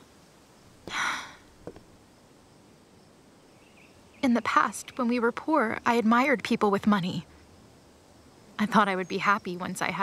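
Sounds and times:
woman sighing: 0:00.9 - 0:01.5.

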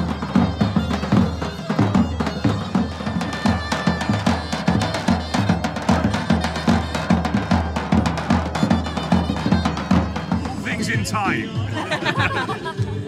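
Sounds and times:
large drum beating: 0:00.0 - 0:12.5
folk dance music: 0:00.0 - 0:13.0.

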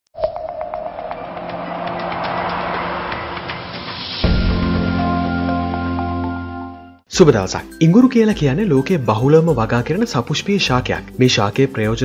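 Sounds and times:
intro jingle with struck notes: 0:00.2 - 0:07.0
steady music bed: 0:00.6 - 0:12.0.

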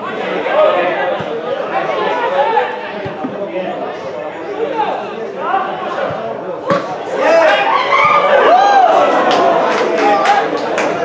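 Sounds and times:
voices shouting and calling: 0:00.1 - 0:10.6.

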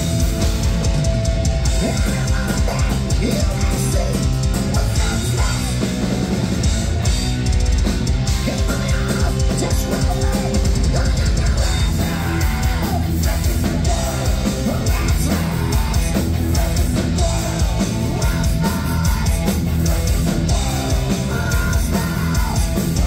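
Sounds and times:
bass guitar: 0:00.0 - 0:23.0
distorted electric guitars: 0:00.0 - 0:23.0
pounding drum kit: 0:00.0 - 0:23.0.

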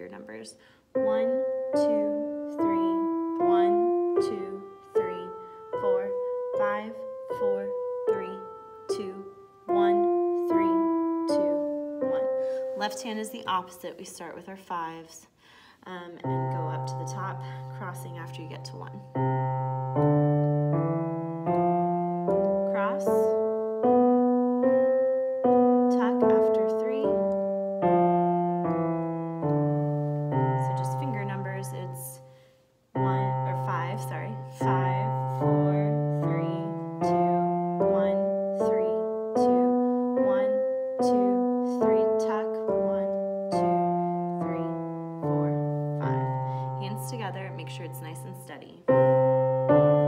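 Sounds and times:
digital piano playing a scale: 0:00.0 - 0:13.9, 0:16.2 - 0:50.0.

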